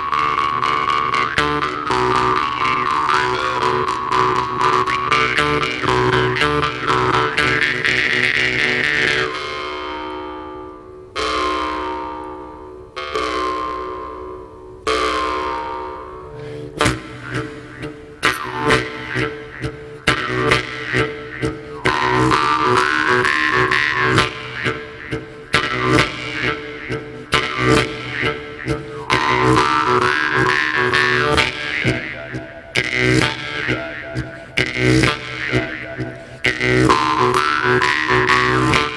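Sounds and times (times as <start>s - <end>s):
jew's harps droning and plucked: 0.0s - 38.9s.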